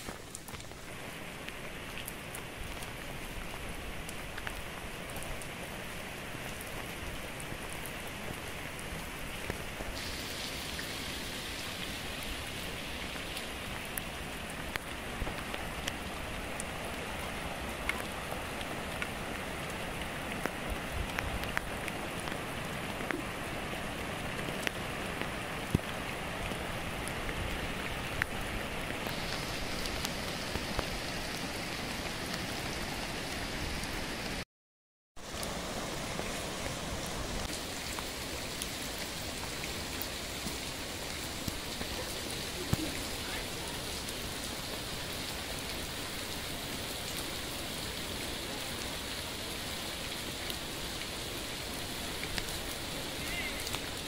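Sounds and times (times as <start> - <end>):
steady rain falling: 0.0 - 34.4, 35.2 - 54.0
raindrop hits: 41.3 - 44.4.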